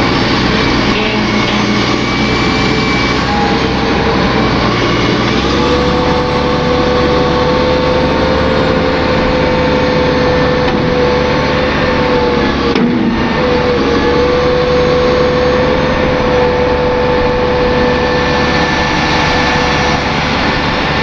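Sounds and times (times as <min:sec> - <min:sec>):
excavator engine rumble: 0:00.0 - 0:21.0
hydraulic whine: 0:00.0 - 0:21.0.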